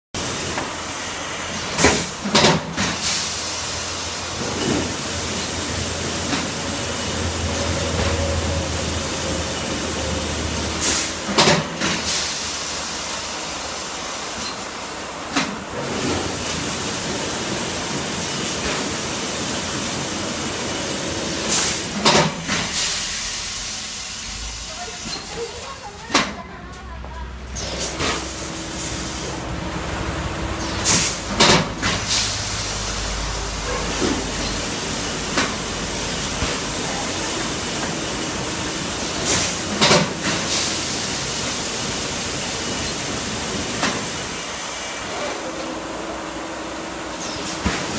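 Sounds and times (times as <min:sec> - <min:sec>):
packaging machine hissing: 0:00.2 - 0:26.3, 0:27.6 - 0:29.4, 0:30.5 - 0:47.9.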